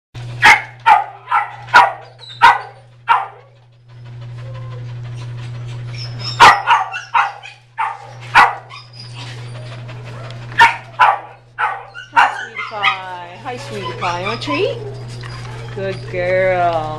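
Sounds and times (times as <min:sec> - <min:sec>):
dogs barking: 0:00.2 - 0:05.0, 0:05.6 - 0:16.9.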